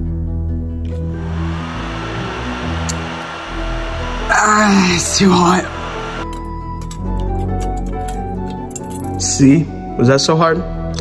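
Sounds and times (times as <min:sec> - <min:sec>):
hair dryer blowing: 0:00.9 - 0:06.4.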